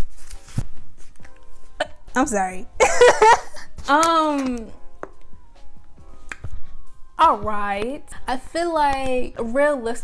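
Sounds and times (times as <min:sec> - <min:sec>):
faint background music: 0:00.0 - 0:10.0
woman giggling: 0:02.8 - 0:03.8.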